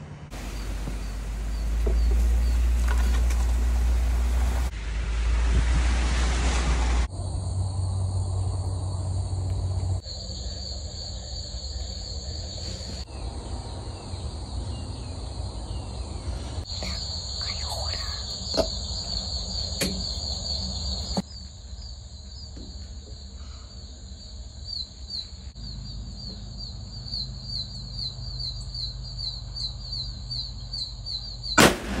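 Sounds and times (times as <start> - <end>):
insects buzzing: 0.3 - 4.7, 7.0 - 32.0
rifle shot: 31.6 - 32.0.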